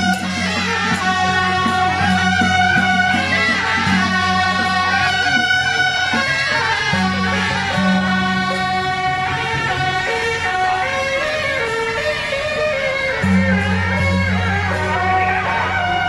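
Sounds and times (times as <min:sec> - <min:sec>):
brass band playing slow melody: 0:00.0 - 0:11.0.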